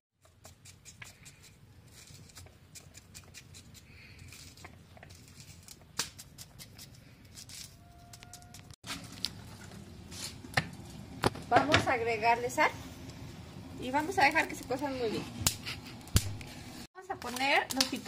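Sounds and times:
knife cutting cactus pad: 0:00.2 - 0:07.7.

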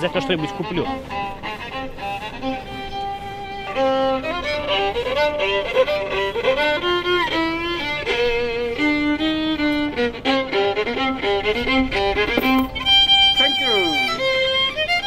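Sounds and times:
solo violin melody: 0:00.0 - 0:15.0.

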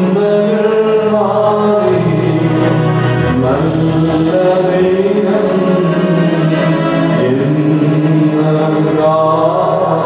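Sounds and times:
man singing a chant: 0:00.0 - 0:10.0.

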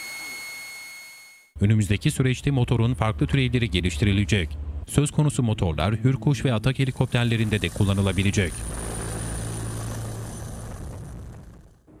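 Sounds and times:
high thin turbine whine: 0:06.1 - 0:12.0
helicopter rotor drone: 0:06.9 - 0:11.7.

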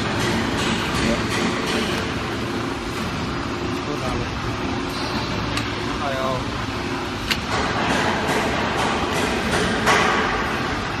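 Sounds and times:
cartoning machine running: 0:00.0 - 0:11.0.

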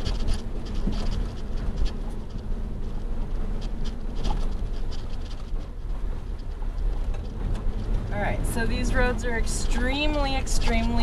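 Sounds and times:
engine and tyre rumble: 0:00.0 - 0:11.0
light clicks and rattles: 0:00.0 - 0:11.0.

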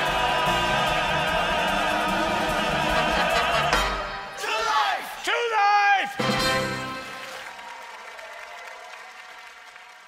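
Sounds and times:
audience applause: 0:06.8 - 0:10.0.

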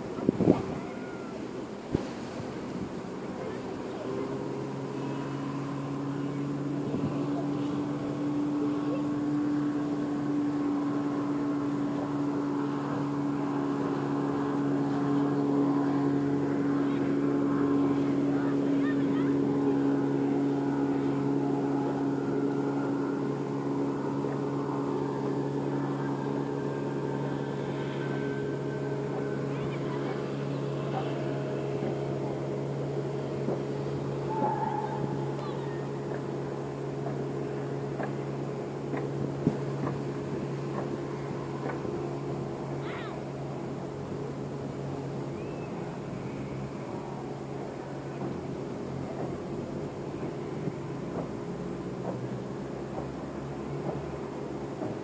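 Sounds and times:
boat engine droning: 0:00.0 - 0:55.0.

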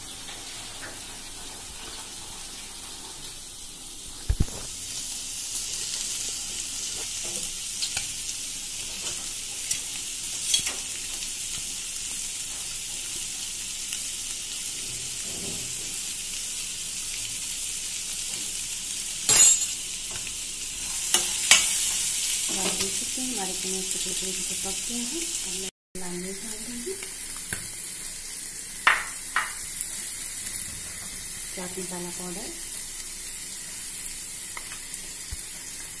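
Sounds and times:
chickpeas sizzling in a pan: 0:00.0 - 0:36.0.

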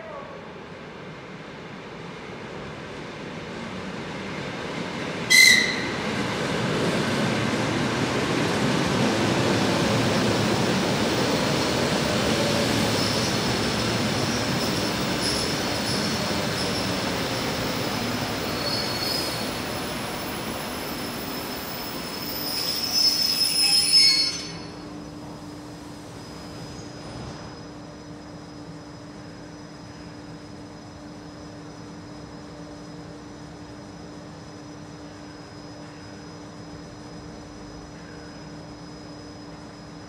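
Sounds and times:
train wheel and motor rumble: 0:00.0 - 0:40.0
train whistle toot: 0:05.3 - 0:06.0, 0:22.9 - 0:24.7
high wheel squeal: 0:18.4 - 0:19.6, 0:21.6 - 0:24.8.

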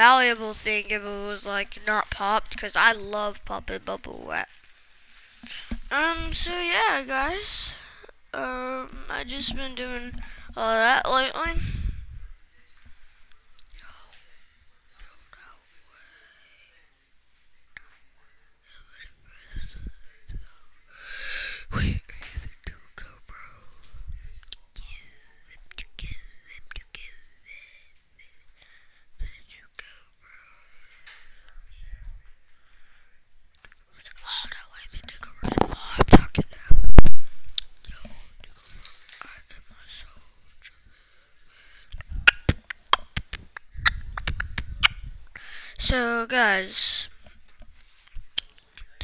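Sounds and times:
person speaking: 0:00.0 - 0:04.5, 0:05.3 - 0:12.1
boy whispering: 0:00.0 - 0:04.6, 0:05.4 - 0:12.7, 0:13.6 - 0:14.4, 0:15.0 - 0:16.9, 0:18.6 - 0:32.3, 0:33.6 - 0:37.2, 0:37.8 - 0:40.9, 0:41.9 - 0:47.3
breathy hiss: 0:04.4 - 0:06.0, 0:20.9 - 0:21.8, 0:45.2 - 0:46.0.

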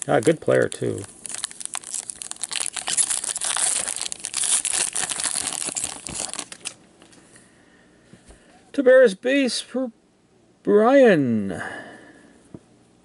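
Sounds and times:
card pack wrapper crinkling and tearing: 0:00.0 - 0:06.8.

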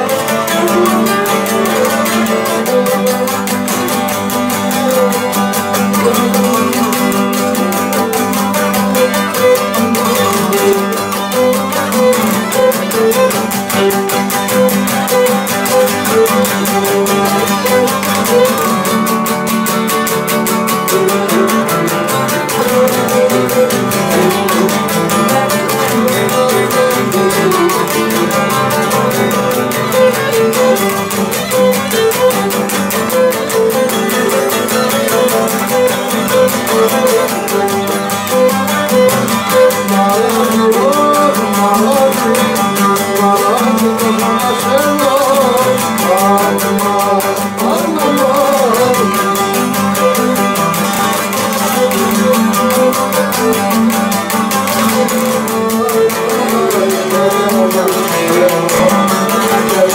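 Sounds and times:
bowed lyra melody: 0:00.0 - 0:59.9
lutes strumming: 0:00.0 - 0:59.9.

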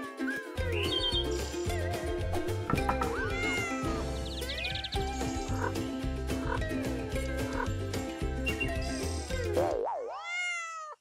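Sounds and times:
light music with repeating bass: 0:00.5 - 0:09.7
cat meow effects: 0:03.1 - 0:04.9, 0:10.0 - 0:11.0.

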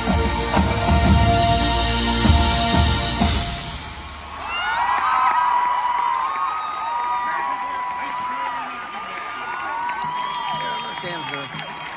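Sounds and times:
crowd applauding and cheering: 0:03.9 - 0:11.9.

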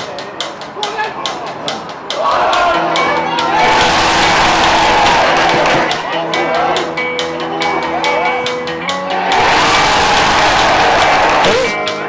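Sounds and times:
players and spectators shouting: 0:02.1 - 0:11.8.

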